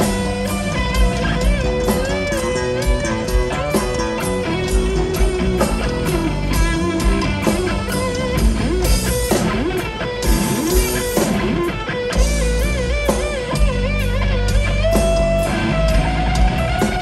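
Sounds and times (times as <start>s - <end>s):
electric guitar bent notes: 0.0s - 17.0s
rock band playing live: 0.0s - 17.0s.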